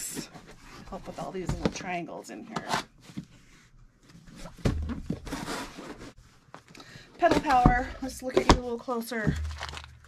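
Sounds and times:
paper and cardboard rustling: 0.0s - 10.0s.

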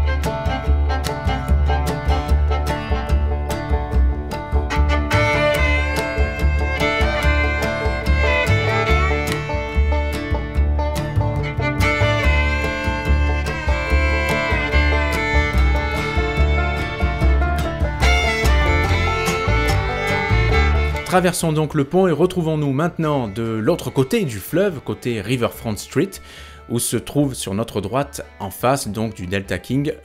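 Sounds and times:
country fiddle and guitar music: 0.0s - 30.0s.

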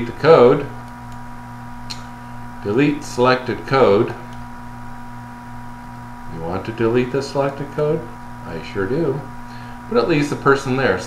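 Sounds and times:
narrator speaking: 0.0s - 0.8s, 2.6s - 4.3s, 6.3s - 11.0s
electrical hum: 0.0s - 11.0s.

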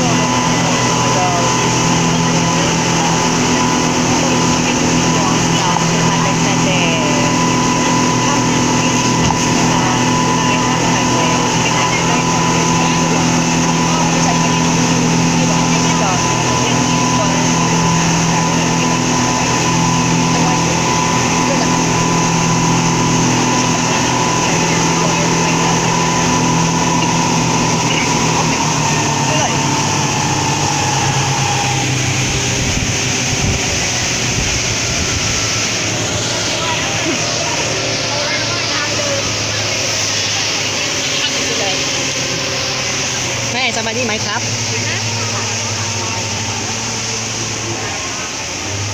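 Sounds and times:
speedboat engine running: 0.0s - 48.9s
water noise: 0.0s - 48.9s
wind noise: 27.9s - 37.9s.

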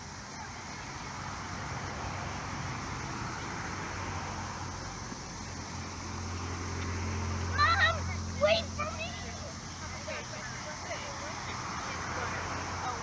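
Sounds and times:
even outdoor hiss: 0.0s - 13.0s.

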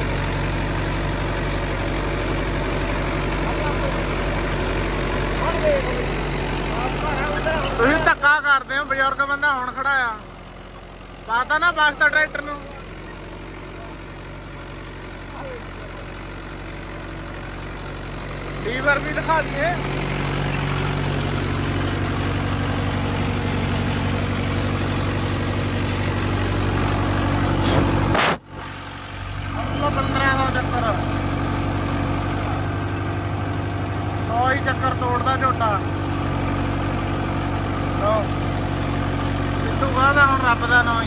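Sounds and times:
tractor diesel engine running: 0.0s - 41.0s.

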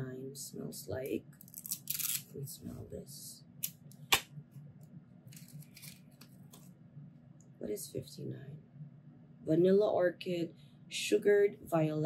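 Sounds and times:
paper packaging rustling: 5.3s - 6.7s.

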